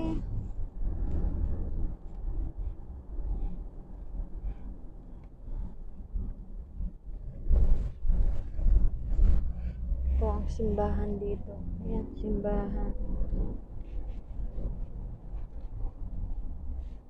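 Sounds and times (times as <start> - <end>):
road rumble inside car: 0.0 - 17.0.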